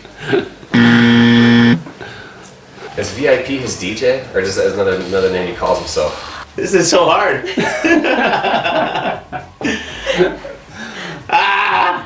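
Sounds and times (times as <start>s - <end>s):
flat low buzzer: 0.8s - 1.8s.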